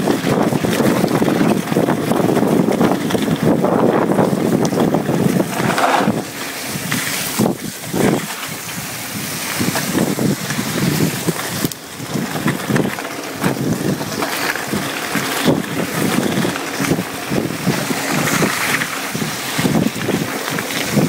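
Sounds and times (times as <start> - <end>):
bike rattling over gravel: 0.0 - 21.0
wind buffeting microphone: 0.0 - 21.0.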